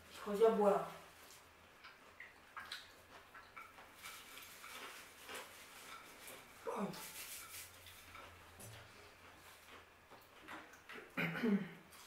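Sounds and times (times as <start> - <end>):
chewing crunchy food: 1.2 - 11.2.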